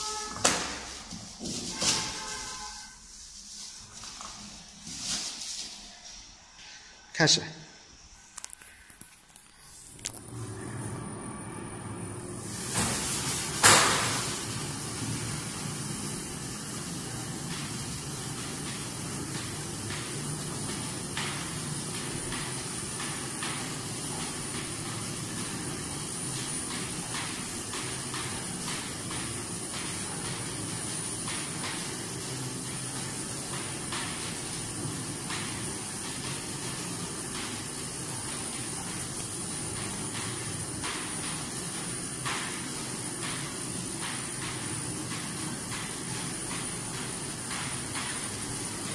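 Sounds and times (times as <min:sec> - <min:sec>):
machine running noise: 0:09.4 - 0:48.9.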